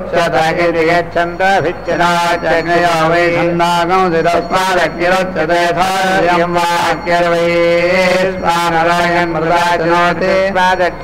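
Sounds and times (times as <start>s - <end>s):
man chanting: 0.0s - 11.0s
steady low hum: 0.0s - 11.0s.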